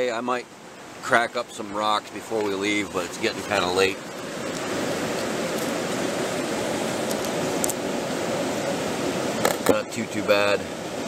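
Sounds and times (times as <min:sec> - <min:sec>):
stream water rushing: 0:00.0 - 0:11.0.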